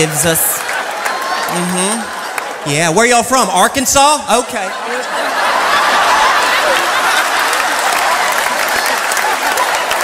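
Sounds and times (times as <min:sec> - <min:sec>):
audience applauding: 0:00.0 - 0:02.8, 0:05.0 - 0:10.0.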